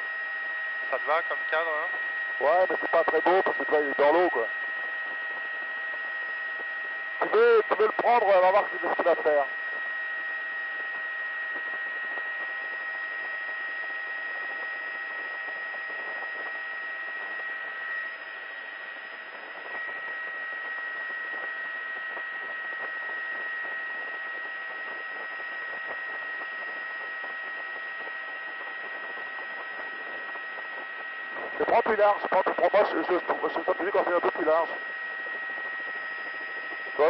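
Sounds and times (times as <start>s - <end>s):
faint steady tones: 0.0s - 37.0s
high whine: 0.0s - 37.0s.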